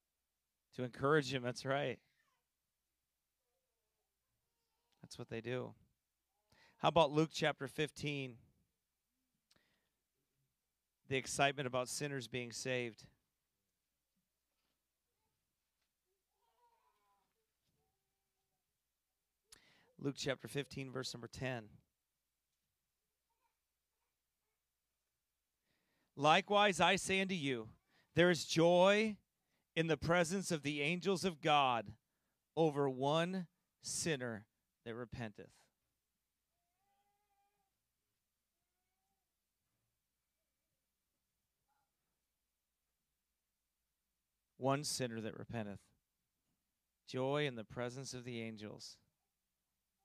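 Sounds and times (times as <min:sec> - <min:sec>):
faint high drawn-out cries: 0:16.3 - 0:17.9, 0:36.6 - 0:37.8.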